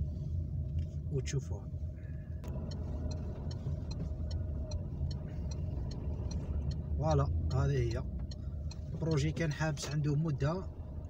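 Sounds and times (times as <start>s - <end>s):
engine and road noise drone: 0.0s - 11.0s
turn signal ticking: 2.3s - 11.0s.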